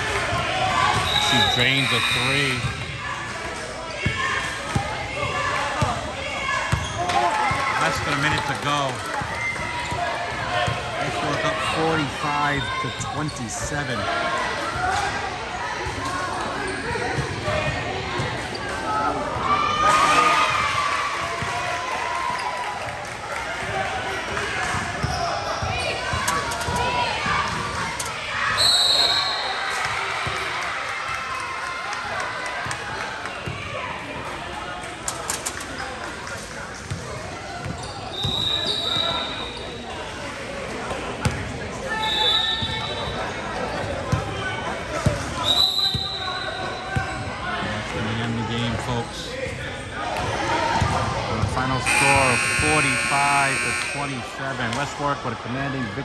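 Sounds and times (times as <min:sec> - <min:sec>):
voices echoing in gym: 0:00.0 - 0:56.0.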